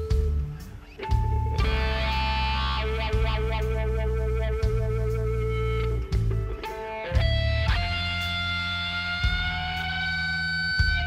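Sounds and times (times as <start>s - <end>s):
low bass guitar notes: 0.0s - 11.0s
sustained electric guitar bend: 0.0s - 11.0s.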